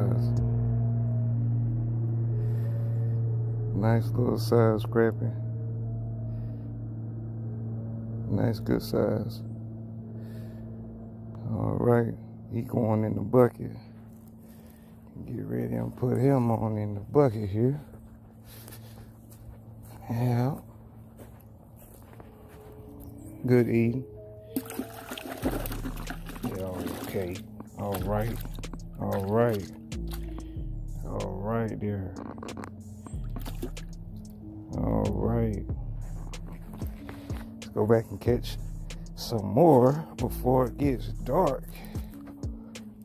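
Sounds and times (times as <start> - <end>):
droning pad music: 0.0 - 43.0
low steady hum: 0.0 - 43.0.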